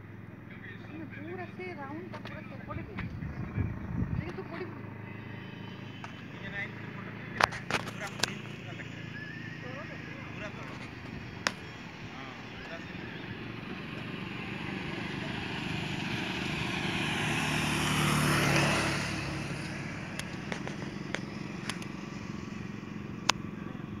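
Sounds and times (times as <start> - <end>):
vehicle passing: 0.0 - 24.0
sharp clicks: 19.6 - 22.0.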